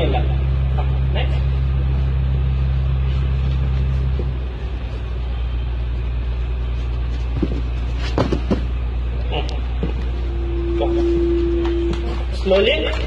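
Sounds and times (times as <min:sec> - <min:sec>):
low rumble: 0:00.0 - 0:13.0
bodies thudding on mat: 0:07.1 - 0:08.8.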